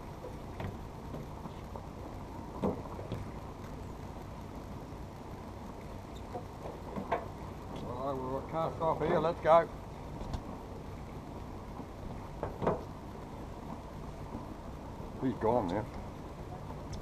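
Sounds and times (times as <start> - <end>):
boat engine idling: 0.0 - 17.0.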